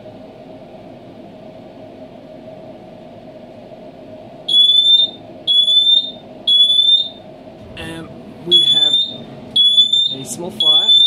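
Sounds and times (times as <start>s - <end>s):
steady low hum: 0.0s - 11.0s
heat detector alarm beeping: 4.5s - 7.3s, 8.5s - 11.0s.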